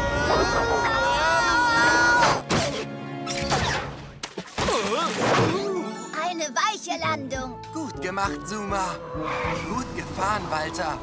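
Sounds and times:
cartoon soundtrack music: 0.0 - 11.0.

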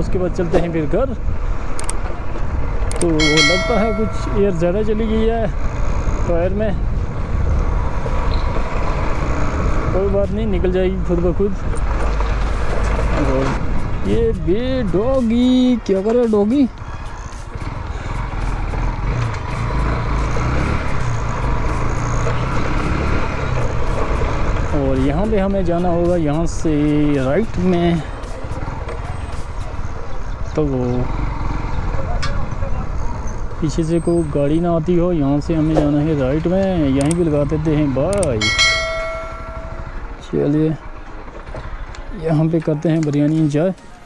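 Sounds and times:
road noise: 0.0 - 44.0
motorcycle engine running: 38.4 - 40.2.

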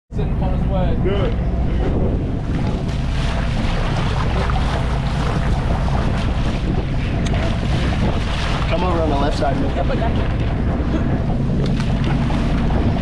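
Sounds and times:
boat engine running: 0.1 - 13.0
wind buffeting microphone: 0.1 - 13.0
water rushing and splashing: 0.4 - 13.0.

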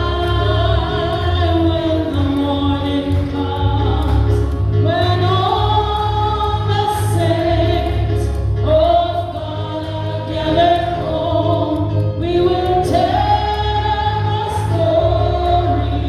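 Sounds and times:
congregation singing a hymn: 0.0 - 16.0
low bass accompaniment: 0.0 - 16.0.

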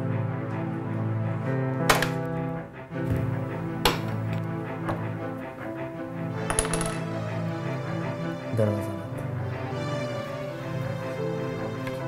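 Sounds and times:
music with sustained tones: 0.0 - 12.0.

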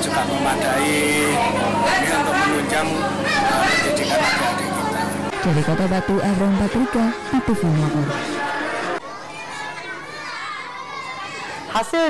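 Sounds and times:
children chattering: 0.0 - 5.5, 6.7 - 12.0.

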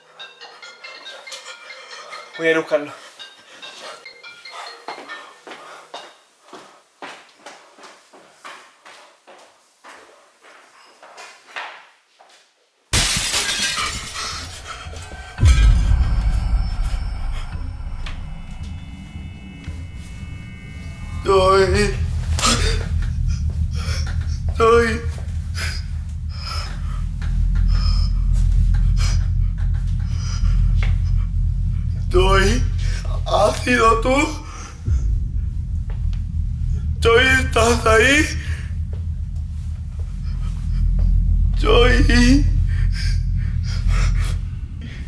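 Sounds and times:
glass shattering: 13.0 - 16.6
loud low hum: 14.0 - 45.0.

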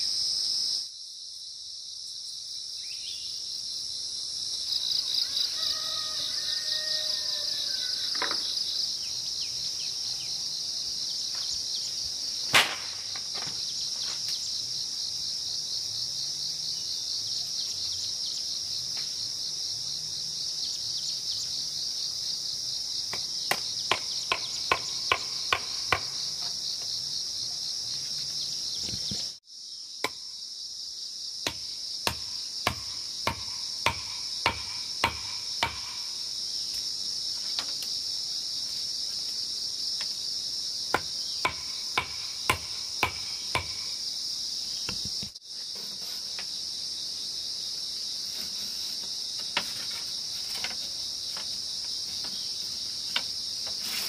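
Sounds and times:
insects chirring: 0.0 - 54.0
mallet knocking on bamboo and wood: 23.1 - 26.2, 31.4 - 36.0, 40.9 - 43.8.

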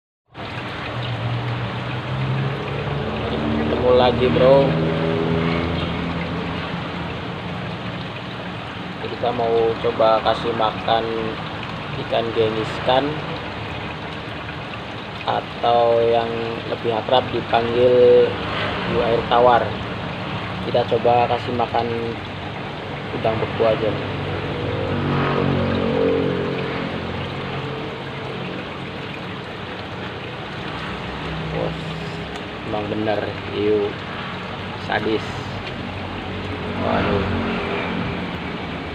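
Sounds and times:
aquarium water bubbling: 0.3 - 38.9.

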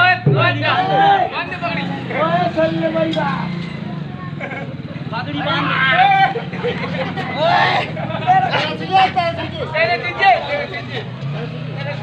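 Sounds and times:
performers calling out: 0.0 - 4.1, 5.1 - 11.7
crowd chatter: 0.0 - 12.0.

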